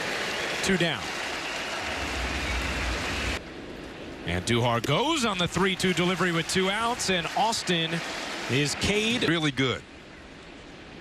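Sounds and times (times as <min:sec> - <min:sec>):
crowd noise hum: 0:00.0 - 0:11.0
low rumble: 0:01.8 - 0:04.2.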